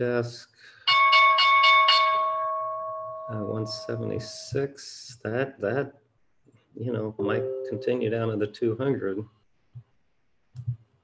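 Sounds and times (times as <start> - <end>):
bell-like alert chime: 0.9 - 4.4, 7.2 - 8.2.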